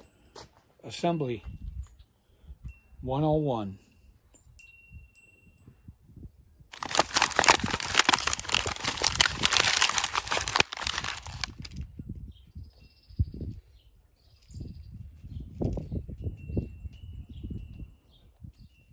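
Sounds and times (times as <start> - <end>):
paper crinkling: 6.7 - 11.8.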